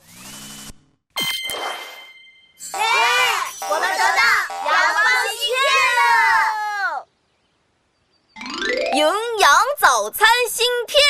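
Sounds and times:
cartoon children's voices: 2.7 - 7.0, 8.9 - 11.0.

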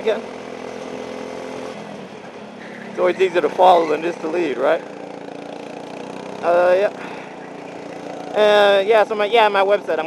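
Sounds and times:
go-kart engine droning: 0.0 - 10.0.

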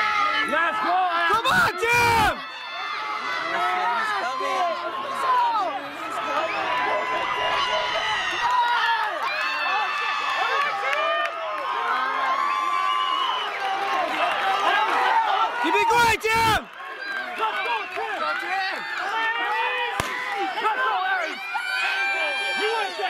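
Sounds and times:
crowd cheering and shouting: 0.0 - 23.0
long held yells: 1.3 - 4.6.

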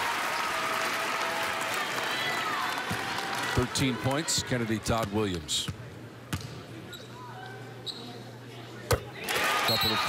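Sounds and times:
low arena hum: 0.0 - 10.0.

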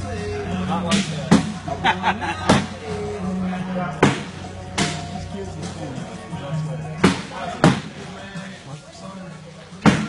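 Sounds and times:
background music: 0.0 - 10.0
people talking: 0.0 - 10.0
bags thudding on wooden boards: 9.8 - 10.0.

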